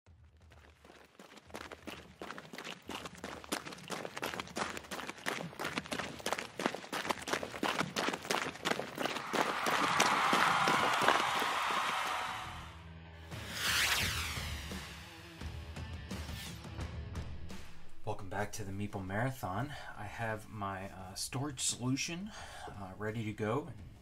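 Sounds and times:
running footsteps: 0:00.1 - 0:12.6.

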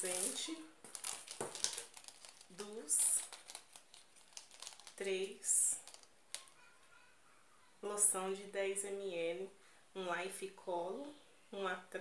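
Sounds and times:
packaging rustling and crinkling: 0:00.0 - 0:06.6.

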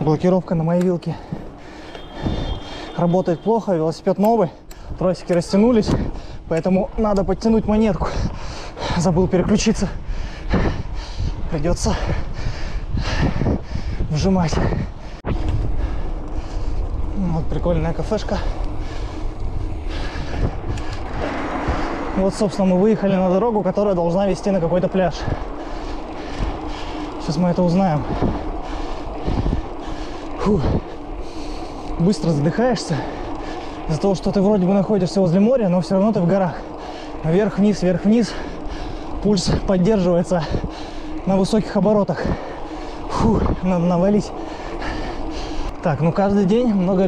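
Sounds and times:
bike rumbling over cobblestones: 0:00.0 - 0:47.0
wind hiss: 0:00.0 - 0:47.0.

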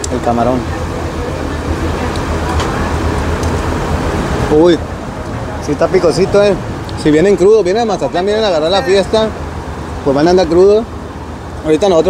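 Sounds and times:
electric fan blowing air: 0:00.0 - 0:12.0
man exclaiming: 0:08.6 - 0:09.3.

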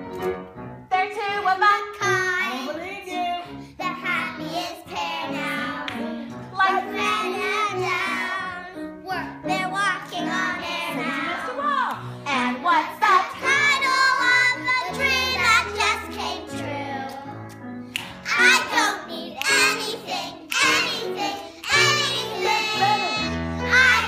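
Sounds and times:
girls singing in unison: 0:03.8 - 0:17.3, 0:18.3 - 0:24.0.

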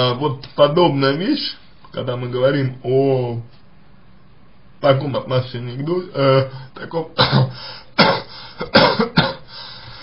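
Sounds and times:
man coughing: 0:07.2 - 0:09.6.

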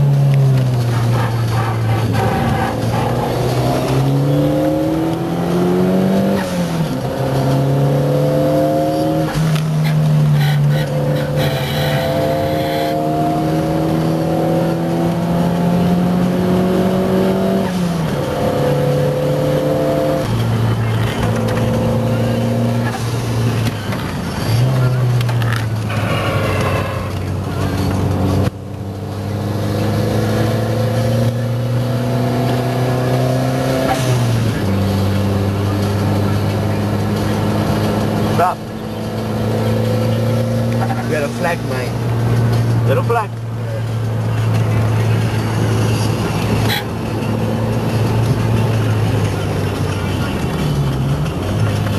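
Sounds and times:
race car engine revving through gears: 0:00.0 - 0:51.9.

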